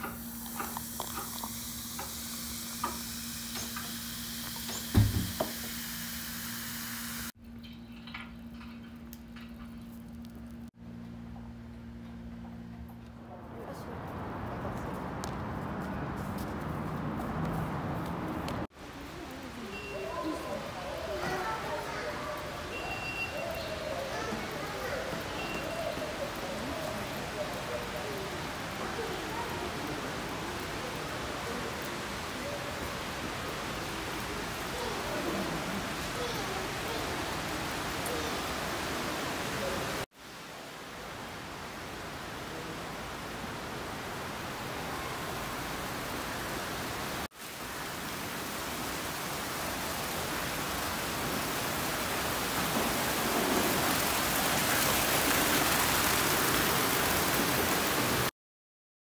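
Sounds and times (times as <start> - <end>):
water fountain splashing: 0.0 - 7.4, 18.6 - 58.3
distant voices: 7.5 - 40.0.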